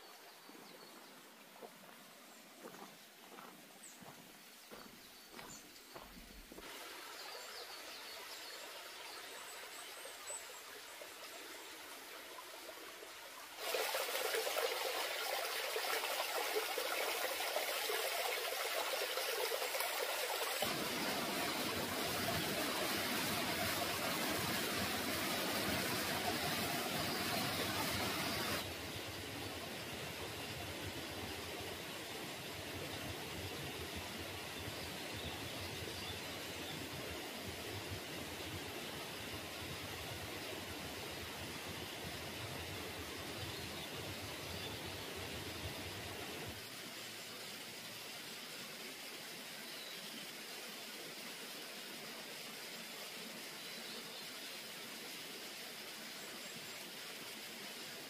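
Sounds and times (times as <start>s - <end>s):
forest ambience hiss: 0.0s - 58.0s.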